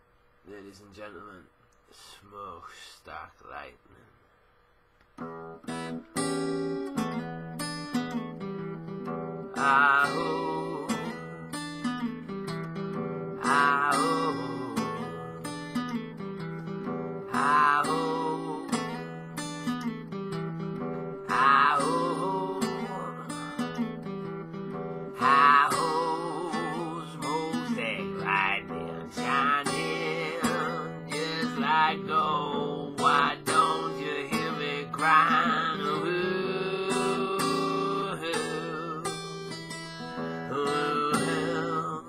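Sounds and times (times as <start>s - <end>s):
acoustic guitar blues riff: 5.2s - 42.0s.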